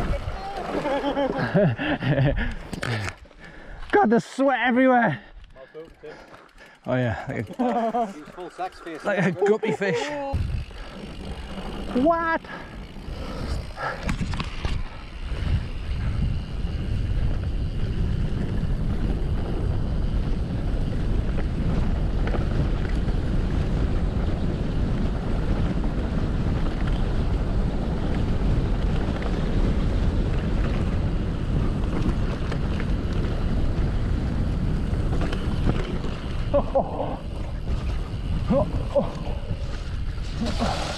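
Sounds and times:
wind rumbling on camera microphone: 0.0s - 3.6s, 10.3s - 40.9s
person laughing: 0.6s - 3.1s, 7.2s - 8.4s, 9.1s - 10.4s, 36.5s - 37.4s, 38.4s - 39.5s.

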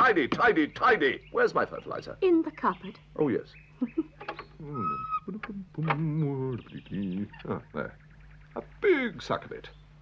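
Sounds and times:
man humming or grunting: 4.6s - 6.5s.

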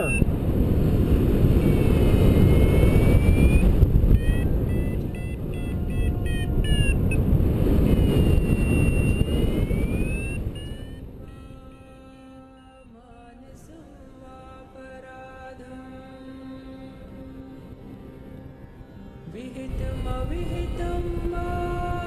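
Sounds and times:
variometer electronic tones: 0.0s - 0.4s, 1.5s - 11.8s
wind on microphone: 0.0s - 12.3s
quiet music: 11.2s - 22.0s.

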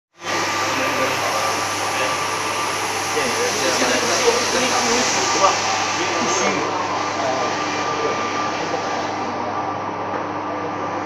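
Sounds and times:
printers whirring: 0.2s - 11.0s
thin steady whine: 0.2s - 11.0s.

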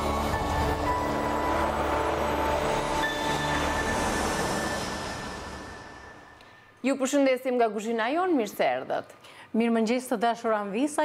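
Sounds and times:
jingle music tones: 0.0s - 6.8s
rushing whoosh effect: 0.0s - 6.8s.

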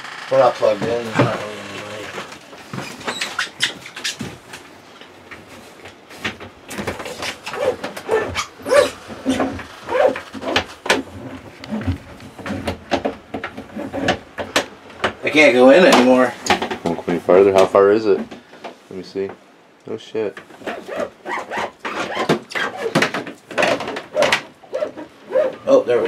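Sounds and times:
short squeaky tones: 7.5s - 10.2s.

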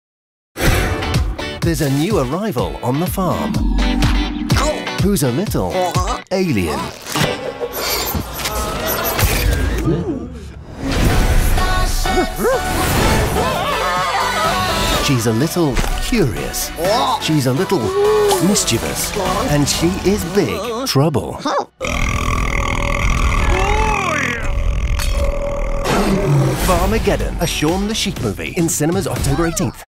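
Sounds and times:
film music: 0.7s - 6.0s, 10.6s - 20.6s, 25.9s - 29.2s
character vocal sound: 3.3s - 5.0s, 16.8s - 19.7s, 20.3s - 26.8s
sound effects: 3.3s - 5.0s
cartoon burp: 21.8s - 26.6s.

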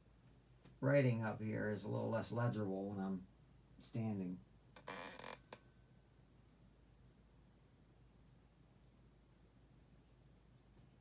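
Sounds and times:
soft rustle: 9.8s - 11.0s.

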